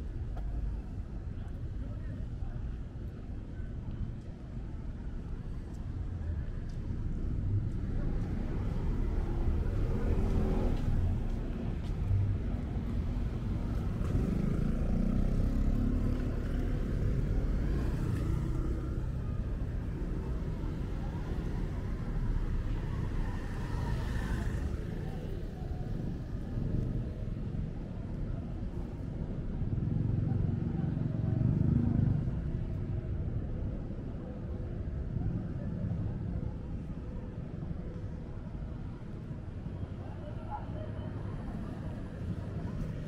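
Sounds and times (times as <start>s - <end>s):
low traffic rumble: 0.0s - 43.0s
motor scooters passing: 12.7s - 27.2s.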